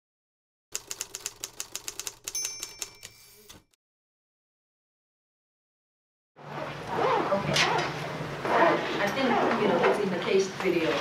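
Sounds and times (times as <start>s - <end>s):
typewriter key clacks: 0.8s - 3.6s
typewriter bell ding: 2.2s - 3.7s.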